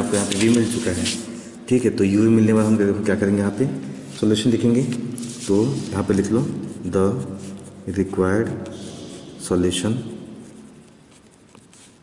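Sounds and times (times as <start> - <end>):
pen scratching on paper: 10.2 - 12.0.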